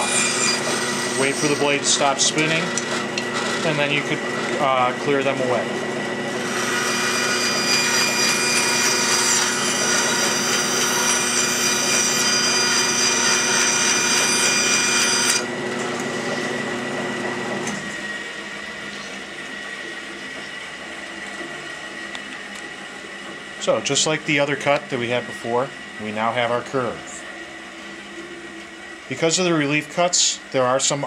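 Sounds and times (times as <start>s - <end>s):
saw cutting through wood: 0.0s - 15.6s
bandsaw whine: 0.0s - 19.8s.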